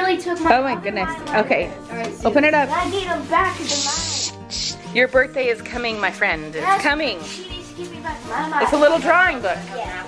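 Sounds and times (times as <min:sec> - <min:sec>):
background music: 0:00.0 - 0:10.0
tissue paper rustling: 0:02.5 - 0:04.8, 0:06.6 - 0:10.0.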